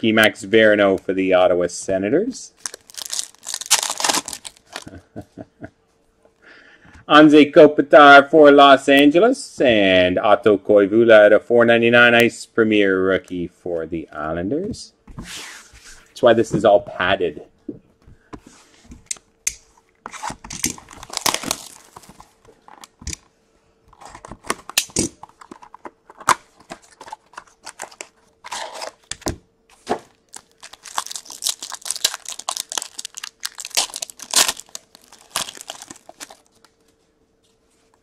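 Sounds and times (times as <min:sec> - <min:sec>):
faint steady hum: 0:00.0 - 0:38.0
card pack packaging tearing: 0:02.6 - 0:04.9, 0:20.1 - 0:22.9, 0:24.0 - 0:29.1, 0:30.1 - 0:36.6.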